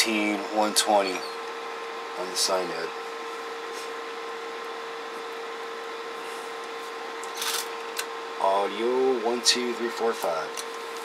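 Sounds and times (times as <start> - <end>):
electronic equipment hum and hiss: 0.0 - 11.0.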